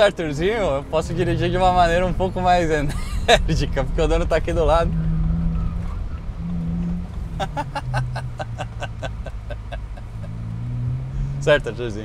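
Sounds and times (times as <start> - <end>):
car engine driven hard: 0.0 - 12.0
man laughing: 2.8 - 3.6, 7.3 - 10.4.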